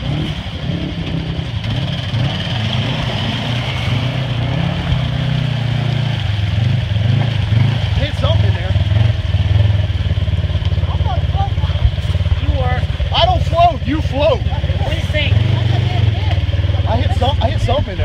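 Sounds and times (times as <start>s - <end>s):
churning muddy water: 0.0s - 18.0s
engine running under load: 0.0s - 18.0s.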